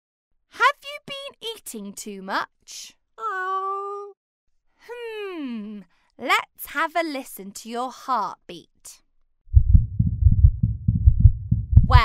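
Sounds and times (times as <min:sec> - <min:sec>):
heartbeats through stethoscope: 0:09.5 - 0:12.0.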